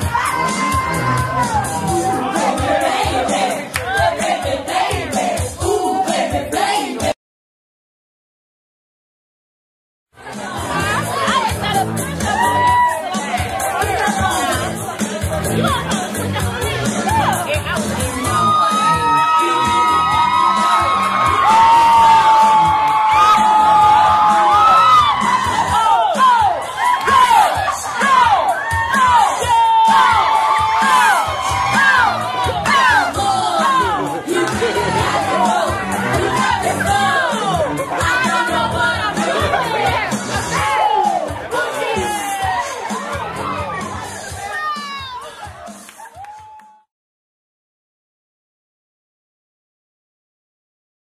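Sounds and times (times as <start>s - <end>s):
crowd noise: 0.0s - 7.2s, 10.2s - 46.9s
music: 0.0s - 7.2s, 10.1s - 46.9s.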